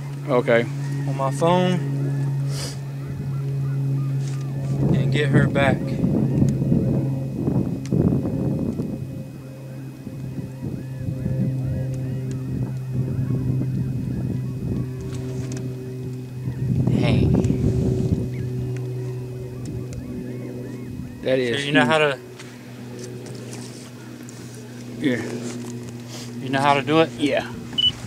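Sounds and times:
geese honking: 0:00.0 - 0:06.9, 0:09.4 - 0:23.0
steady low hum: 0:00.0 - 0:28.0.

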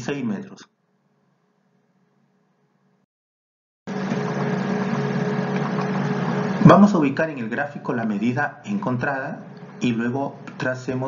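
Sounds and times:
low electrical hum: 0:03.9 - 0:11.0.

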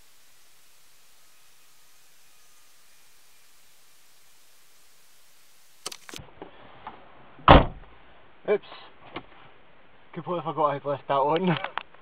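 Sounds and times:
car door thud: 0:07.4 - 0:07.9.

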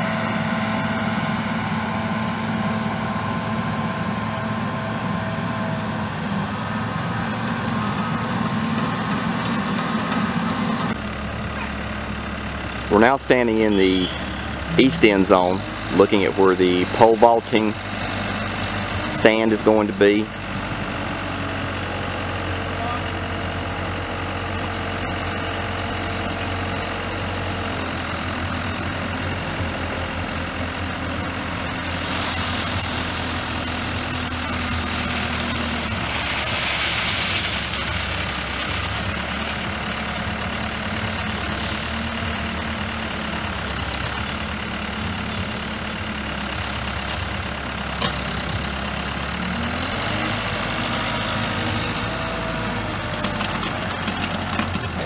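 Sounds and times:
diesel engine of heavy equipment: 0:00.0 - 0:55.0
loud hiss: 0:31.8 - 0:38.8, 0:41.5 - 0:42.2.

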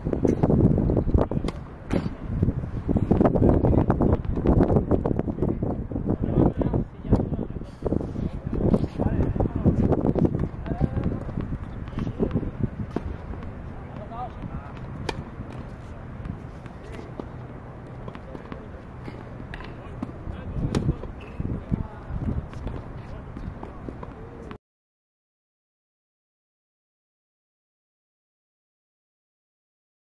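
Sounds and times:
wind on microphone: 0:00.0 - 0:24.5
racket hitting tennis ball: 0:00.2 - 0:02.3, 0:08.5 - 0:24.6
tennis ball bouncing: 0:01.2 - 0:02.3, 0:08.5 - 0:24.6.

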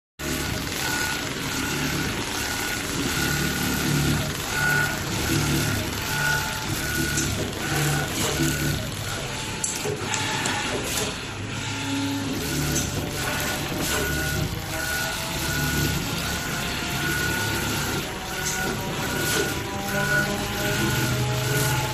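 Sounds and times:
sewing machine stitching: 0:00.2 - 0:21.9.

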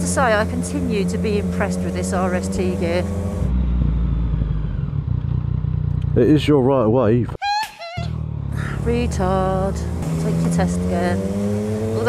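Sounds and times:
motorcycle engine at low revs: 0:00.0 - 0:07.3, 0:08.1 - 0:12.0
road and wind noise: 0:00.0 - 0:07.3, 0:08.1 - 0:12.0.

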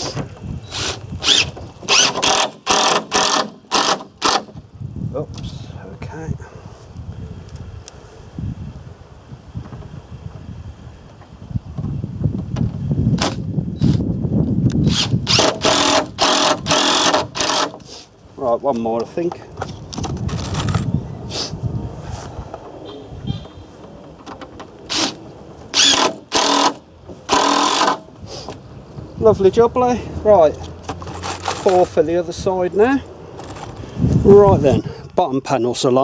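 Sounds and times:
cordless drill driving screws: 0:00.6 - 0:04.5, 0:14.8 - 0:17.9, 0:24.9 - 0:28.1.

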